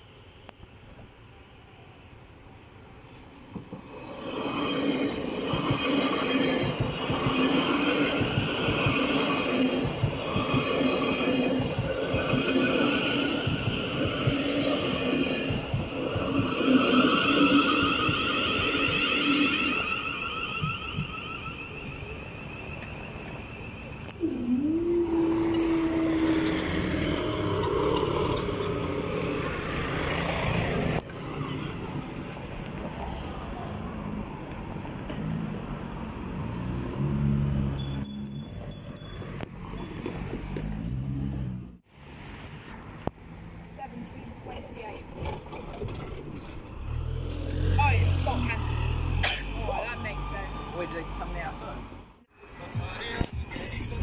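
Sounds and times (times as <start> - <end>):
high wavering train whine: 0.0 - 32.3
train wheels on rails: 3.0 - 43.2.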